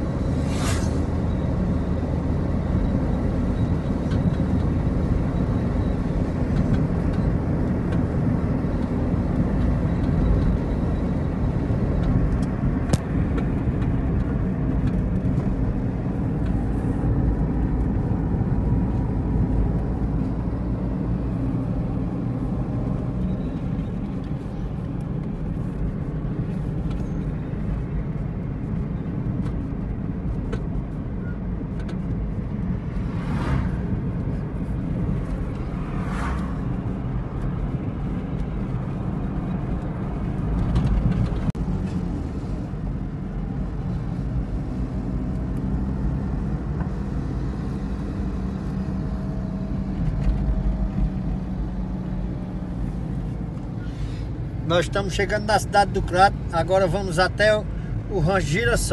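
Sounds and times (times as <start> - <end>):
car interior engine and tyre rumble: 0.0 - 58.9.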